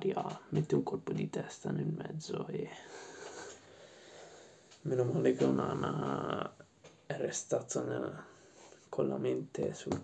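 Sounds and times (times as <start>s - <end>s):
man speaking: 0.0s - 2.9s, 4.8s - 8.3s, 8.9s - 10.0s.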